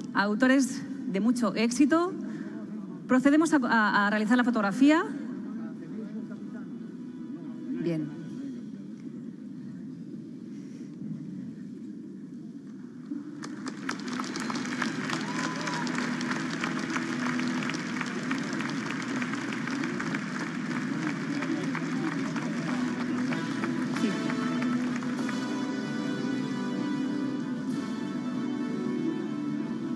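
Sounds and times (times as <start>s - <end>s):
background music: 6.0s - 9.0s, 13.4s - 29.9s
crowd applauding: 13.1s - 26.8s.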